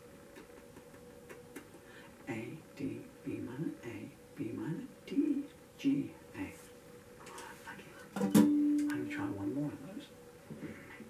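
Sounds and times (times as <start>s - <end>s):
acoustic guitar note ringing: 8.2s - 9.3s.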